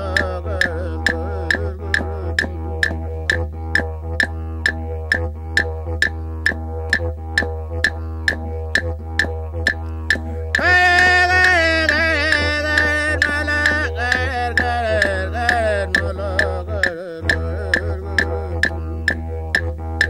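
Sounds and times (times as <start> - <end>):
didgeridoo drone: 0.0 - 20.0
sharp percussive clicks: 0.0 - 20.0.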